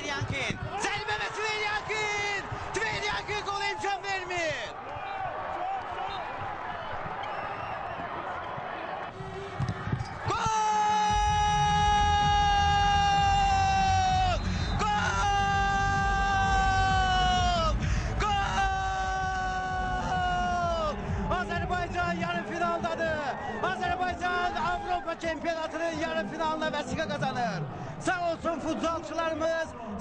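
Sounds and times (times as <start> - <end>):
sports commentator shouting: 0.0 - 4.7, 10.3 - 30.0
crowd roaring: 0.0 - 26.7.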